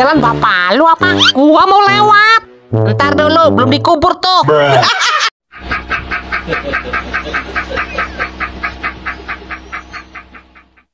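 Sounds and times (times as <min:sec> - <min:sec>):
man laughing hard: 0:04.6 - 0:10.9.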